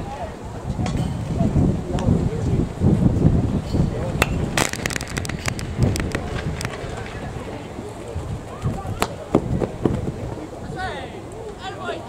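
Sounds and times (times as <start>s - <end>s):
wind rumbling on microphone: 0.0s - 11.5s
baseball popping into mitt: 4.2s - 6.9s
sharp irregular clicks and pops: 4.6s - 6.8s.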